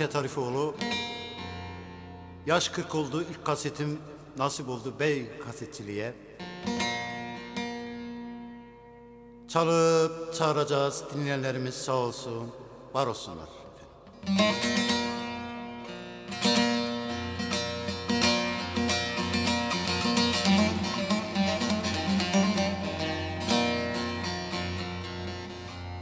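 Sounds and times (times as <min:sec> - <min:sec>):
plucked long-necked lute melody: 0:00.0 - 0:09.5, 0:13.7 - 0:26.0.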